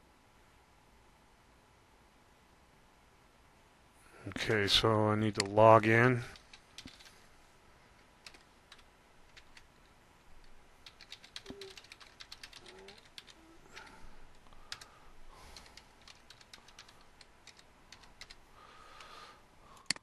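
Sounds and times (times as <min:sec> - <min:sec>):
computer keyboard typing: 0:06.3 - 0:07.1, 0:08.2 - 0:09.7, 0:10.4 - 0:18.4.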